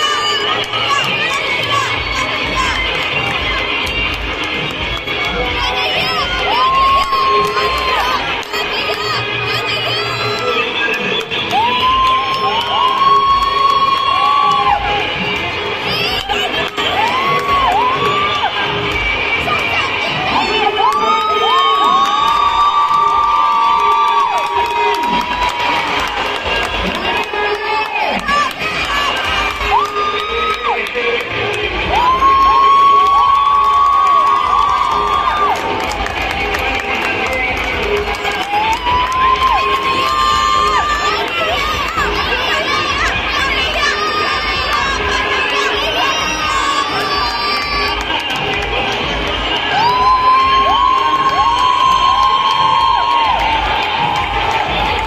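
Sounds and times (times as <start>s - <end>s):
children cheering and shouting: 0.0s - 4.1s, 5.0s - 55.0s.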